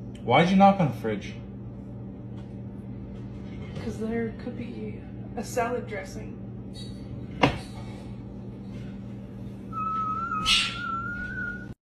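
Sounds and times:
low steady hum: 0.0 - 11.8
high thin whistle-like squeal: 9.8 - 11.8.

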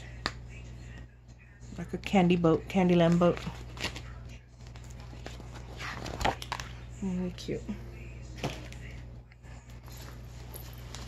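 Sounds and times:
low room hum: 0.0 - 11.0
paper rustle: 3.0 - 6.9.

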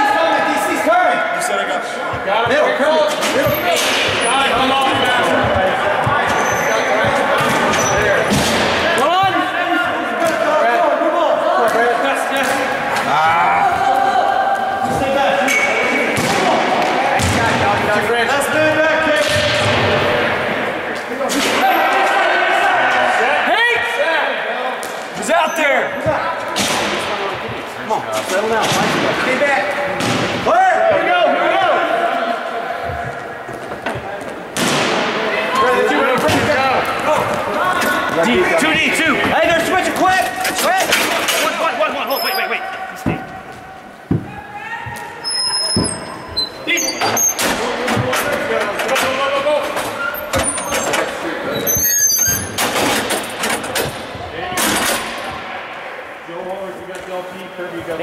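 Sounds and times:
players shouting: 0.0 - 33.4.

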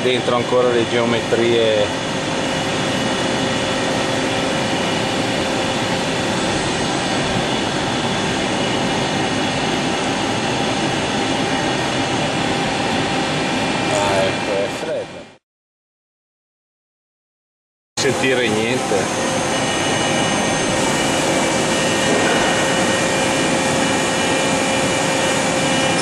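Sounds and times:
high steady whines: 0.0 - 15.4, 18.0 - 26.0
lathe whirring and hissing: 18.0 - 26.0.

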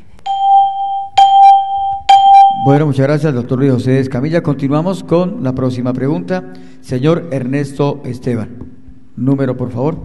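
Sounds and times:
long electronic beeps: 0.3 - 3.0.

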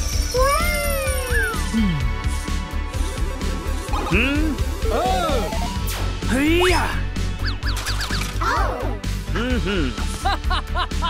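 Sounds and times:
cartoon music with steady beat: 0.3 - 11.0.

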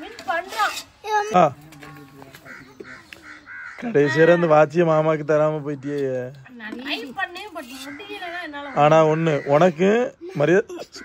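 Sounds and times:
crows cawing: 1.8 - 4.6, 7.6 - 10.0.

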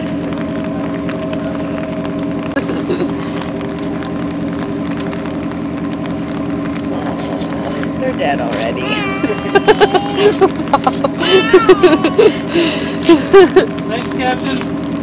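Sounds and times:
engine idling: 0.0 - 15.0.

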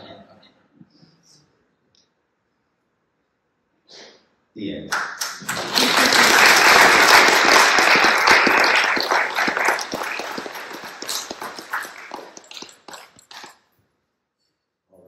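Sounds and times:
audience applauding: 4.9 - 13.6.

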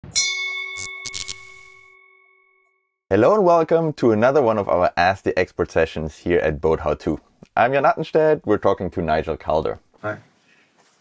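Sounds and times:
bell-like metallic ding: 0.0 - 2.8
short clicks: 1.0 - 1.6.

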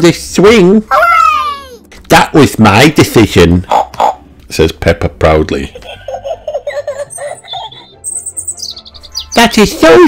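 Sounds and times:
person giggling: 5.7 - 8.0.

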